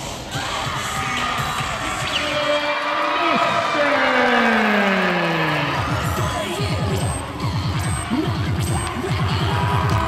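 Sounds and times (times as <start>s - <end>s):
engine-like tone falling in pitch: 3.6s - 6.3s.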